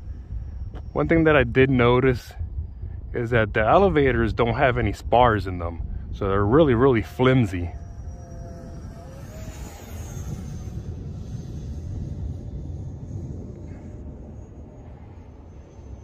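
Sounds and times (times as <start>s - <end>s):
electric model jet whine: 0.0s - 16.0s
low rumble: 0.0s - 16.0s.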